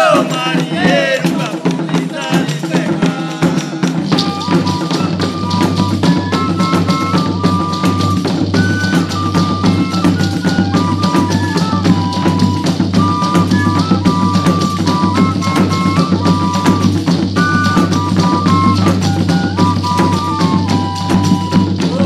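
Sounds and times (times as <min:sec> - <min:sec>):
steady drumming: 0:00.0 - 0:22.0.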